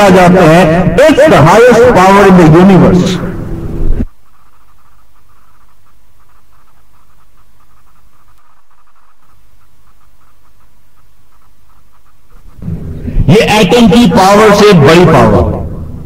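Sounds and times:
low hum: 0:00.0 - 0:16.0.

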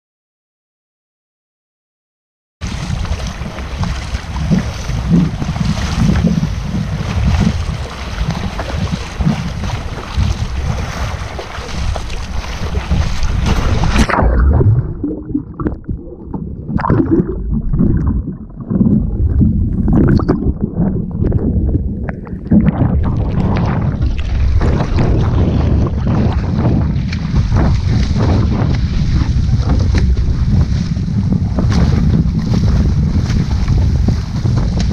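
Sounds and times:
water rushing past: 0:02.6 - 0:34.6
paddle splashes: 0:02.6 - 0:34.9
wind buffeting microphone: 0:02.6 - 0:34.9.

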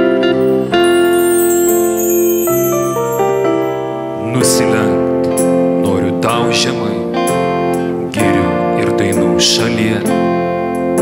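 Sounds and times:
man singing into microphone: 0:04.2 - 0:10.6.

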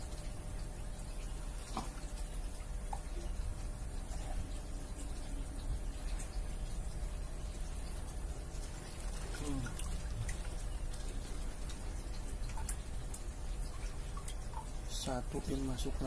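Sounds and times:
steady low hum: 0:00.0 - 0:16.0
water dripping and splashing: 0:00.0 - 0:16.0.

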